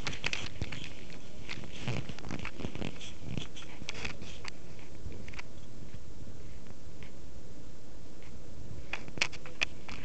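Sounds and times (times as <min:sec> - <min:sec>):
camera handling rustles and clicks: 0:00.0 - 0:04.6.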